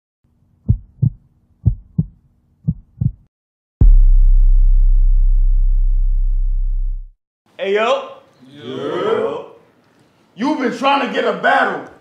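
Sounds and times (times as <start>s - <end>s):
heartbeat double beats: 0.7s - 7.1s
deep bass tone: 3.8s - 7.2s.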